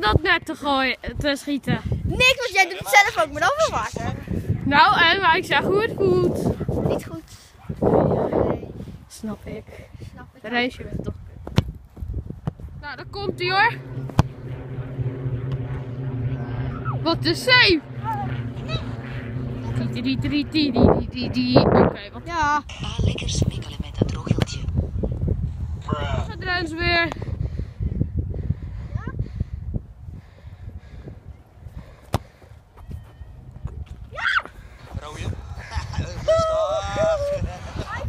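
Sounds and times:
low mechanical hum: 11.0 - 29.0
football kicked thump: 32.1 - 32.4.

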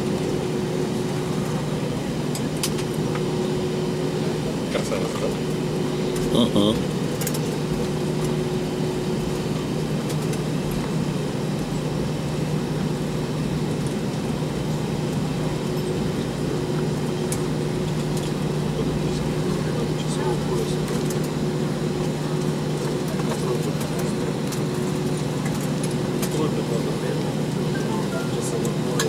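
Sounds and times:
aircraft cabin engine hum: 0.0 - 29.0.

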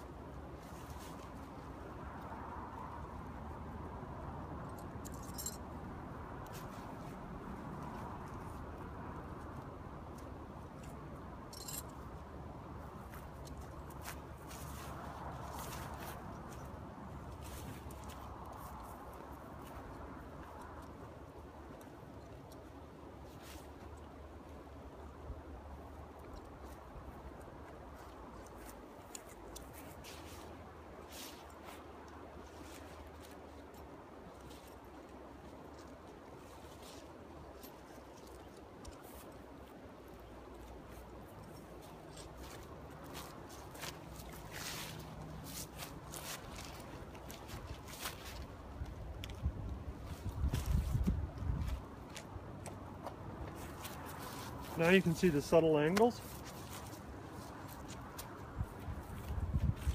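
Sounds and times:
tent fabric rustling: 28.6 - 33.7, 40.6 - 48.8, 53.3 - 55.6.

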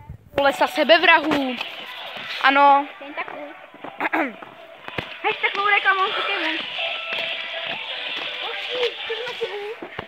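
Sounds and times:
young voices talking indistinctly: 0.4 - 10.0.

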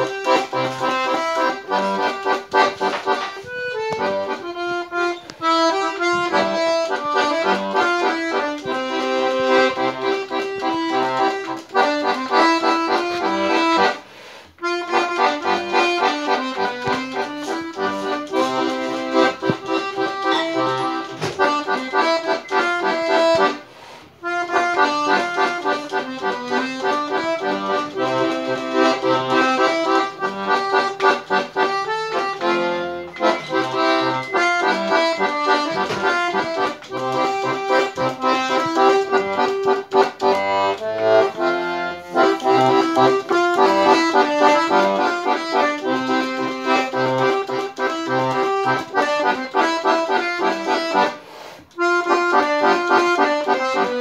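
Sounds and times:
button accordion playing a tune: 0.0 - 54.0.

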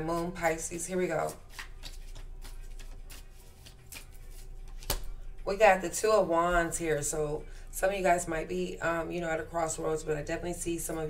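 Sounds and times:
cards flicking and rustling: 1.2 - 5.2.

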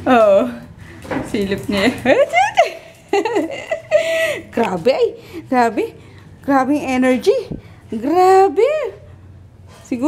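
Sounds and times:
person giggling and laughing: 2.2 - 4.5.

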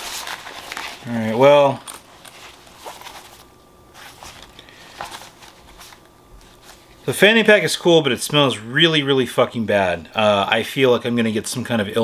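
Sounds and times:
fabric rustling: 0.0 - 1.4, 2.0 - 7.1.

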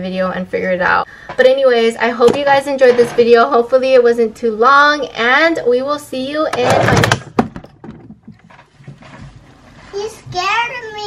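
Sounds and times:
soft bumps: 6.6 - 10.8.

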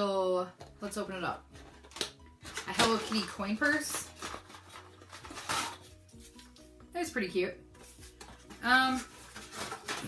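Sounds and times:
packaging rustling: 1.6 - 6.6, 8.0 - 10.0.

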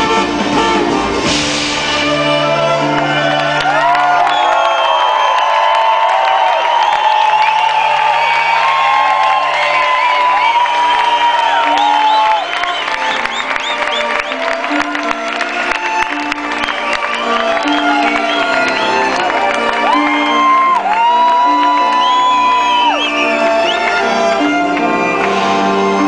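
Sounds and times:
live band playing: 0.0 - 26.0
crowd cheering and whooping: 2.4 - 26.0.

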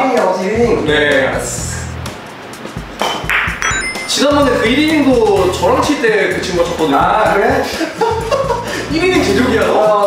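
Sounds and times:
high chime tones: 3.4 - 5.6.

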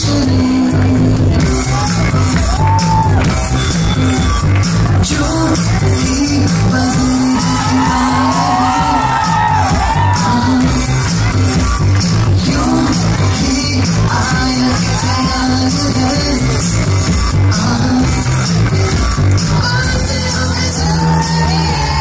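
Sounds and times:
person singing: 0.0 - 3.3, 4.3 - 22.0
dance music with heavy bass: 0.0 - 22.0.

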